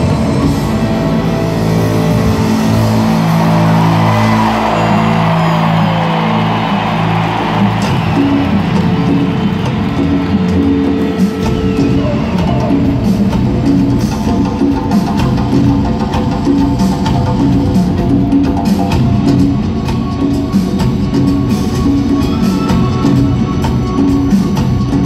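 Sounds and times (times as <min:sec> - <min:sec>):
drum kit: 0:00.0 - 0:25.0
live rock band playing: 0:00.0 - 0:25.0.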